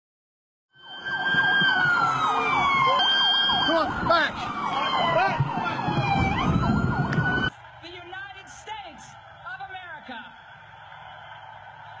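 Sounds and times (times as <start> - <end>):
police sirens wailing: 0.7 - 12.0
rapid siren yelp: 0.7 - 12.0.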